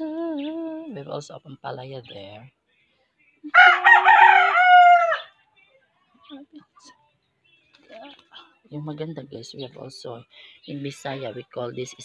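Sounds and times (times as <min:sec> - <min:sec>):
rooster crowing: 0:03.5 - 0:05.3.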